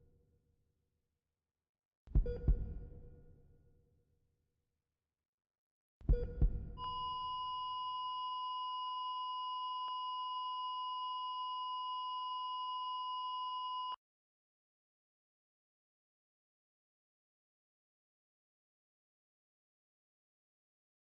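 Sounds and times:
low heartbeat thumps: 2.1s - 3.1s, 6.1s - 6.8s
heart monitor flatline tone: 2.2s - 3.1s, 6.1s - 14.0s.

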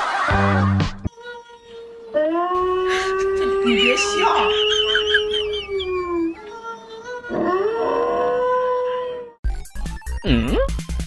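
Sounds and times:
dog howling: 2.1s - 9.4s
wolf howls from television: 2.2s - 6.4s.

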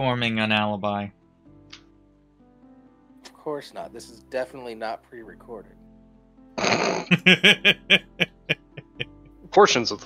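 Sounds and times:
person laughing: 6.6s - 9.1s.

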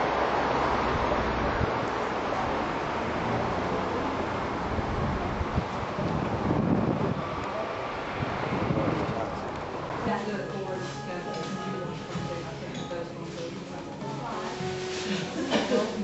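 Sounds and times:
street ambience: 0.0s - 16.0s
wind buffeting microphone: 4.4s - 10.3s.

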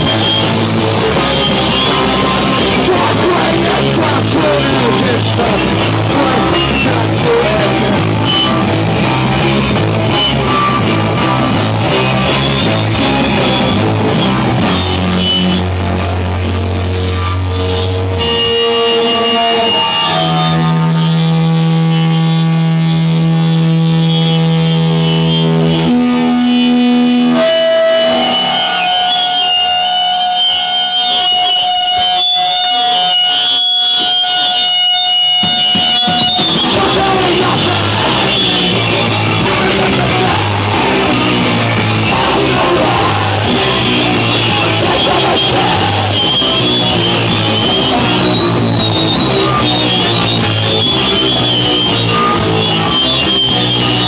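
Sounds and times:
drum kit: 0.0s - 20.7s, 32.8s - 54.0s
electric guitars: 0.0s - 54.0s.

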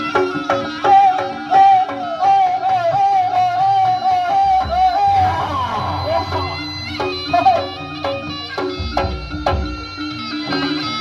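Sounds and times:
drums: 0.0s - 11.0s
gamelan percussion: 0.0s - 11.0s
high wavering melody line: 0.0s - 11.0s.

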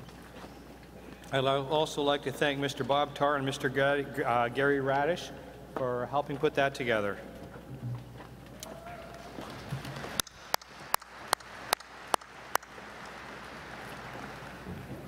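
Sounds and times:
man clapping hands: 9.8s - 14.6s.

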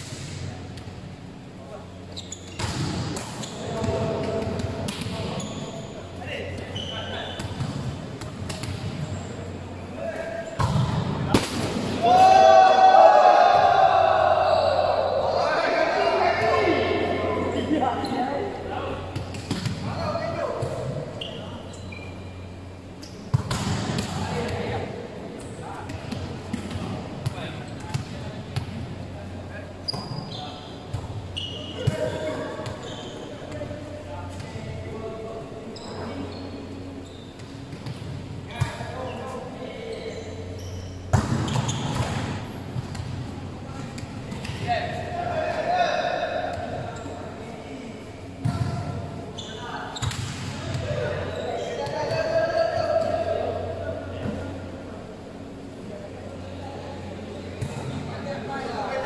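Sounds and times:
volleyball slaps and bounces: 2.5s - 5.4s, 7.3s - 9.1s, 10.6s - 12.4s, 19.1s - 20.0s, 23.3s - 24.8s, 25.4s - 28.8s, 41.1s - 43.2s, 43.8s - 44.9s, 48.4s - 49.0s, 50.0s - 50.9s
players calling out: 12.0s - 19.2s.

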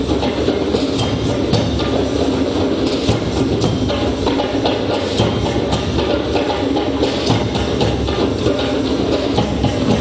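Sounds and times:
clacking percussion: 0.0s - 10.0s
percussion band drumming: 0.0s - 10.0s.

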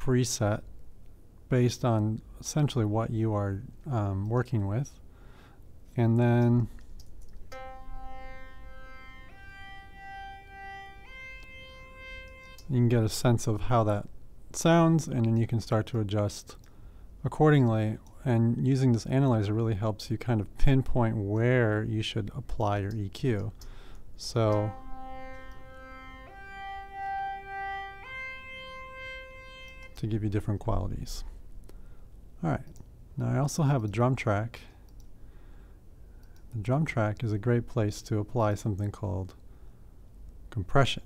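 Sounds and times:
synth lead sustained notes: 7.5s - 13.4s, 24.2s - 30.2s.

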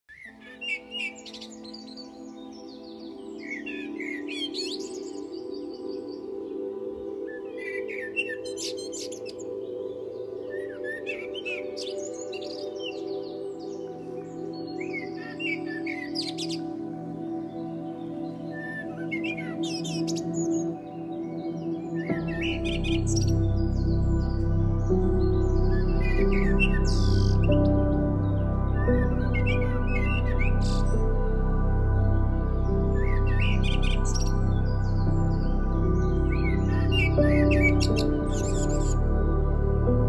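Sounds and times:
ambient music pad: 0.1s - 40.0s
birds chirping: 0.1s - 40.0s.

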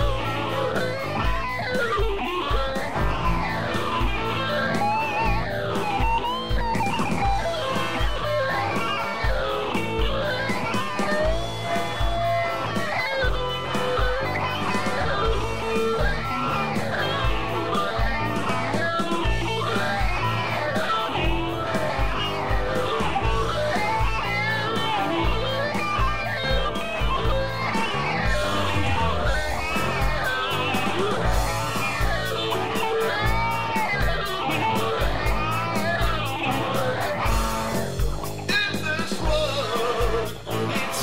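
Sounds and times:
bass guitar: 0.0s - 41.0s
electric guitar lead: 0.0s - 41.0s
steady bass-drum beat: 0.0s - 41.0s.

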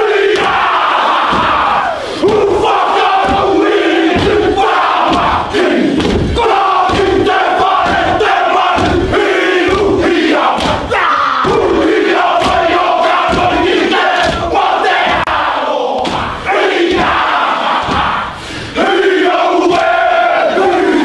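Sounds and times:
men chanting and shouting: 0.0s - 21.0s
feet stamping: 0.4s - 15.4s
body slapping: 3.1s - 9.9s, 10.5s - 14.5s, 16.0s - 18.2s.

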